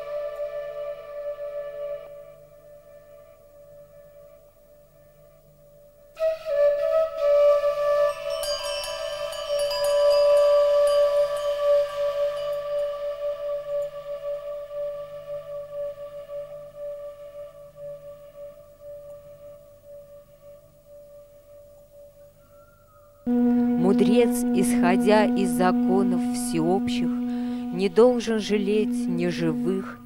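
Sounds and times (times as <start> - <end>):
singing bowl ringing: 8.1 - 14.1, 23.3 - 30.0.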